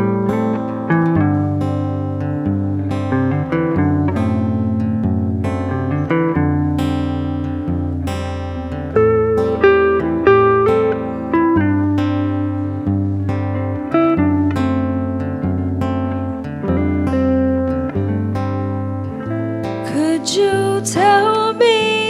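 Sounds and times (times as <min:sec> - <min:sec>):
low bass notes: 0:00.0 - 0:19.8
guitars picking notes: 0:00.0 - 0:22.0
woman singing: 0:19.8 - 0:22.0.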